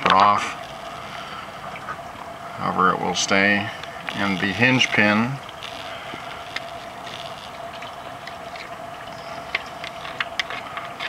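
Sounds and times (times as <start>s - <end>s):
background hiss: 0.0s - 11.0s
faint steady hum: 0.0s - 11.0s.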